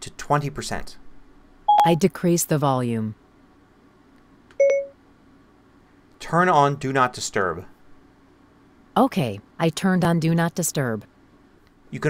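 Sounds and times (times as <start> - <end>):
short computer chime: 1.7 - 2.0, 4.6 - 4.9.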